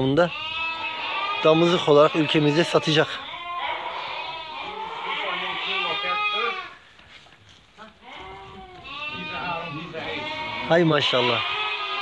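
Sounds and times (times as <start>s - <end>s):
sheep bleating: 0.0s - 6.8s, 7.9s - 12.0s.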